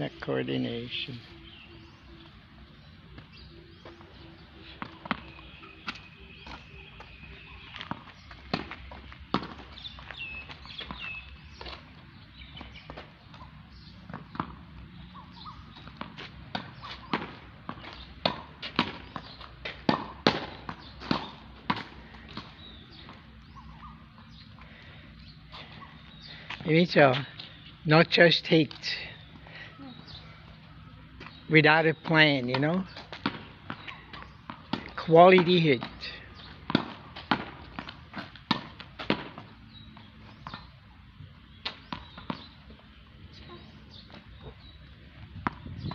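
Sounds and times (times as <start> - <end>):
ball bouncing on hard court: 4.8 - 6.6, 7.7 - 10.2, 13.3 - 14.6, 15.7 - 23.2, 32.0 - 40.7, 41.6 - 42.5, 45.4 - 45.9
racket striking tennis ball: 7.8 - 9.6, 15.9 - 23.0, 32.5 - 39.5.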